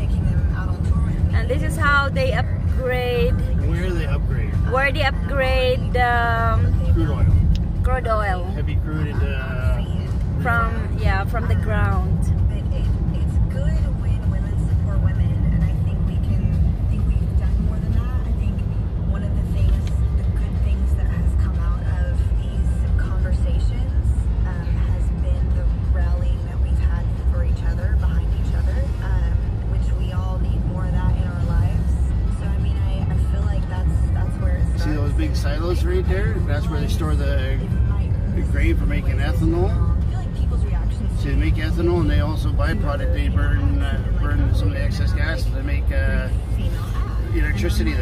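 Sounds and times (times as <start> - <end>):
car engine rumble: 0.0 - 48.0.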